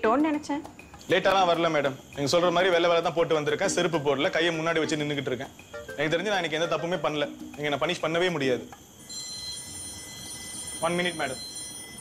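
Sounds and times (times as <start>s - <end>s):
man speaking: 1.1s - 8.6s.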